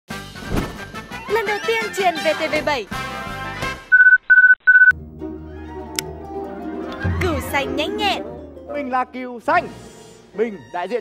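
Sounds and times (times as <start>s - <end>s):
short electronic beeps: 3.9s - 4.9s.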